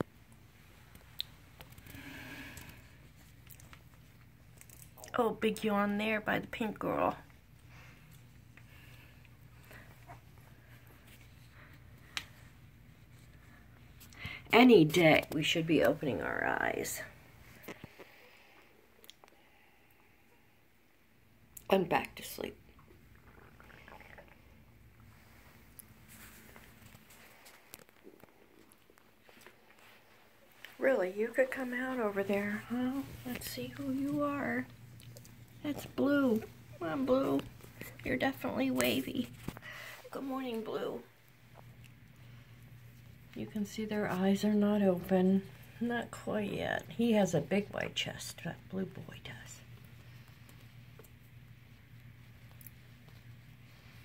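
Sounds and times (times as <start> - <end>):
low steady hum: 0.0 - 54.0
puppies faint soft sounds: 7.3 - 14.4.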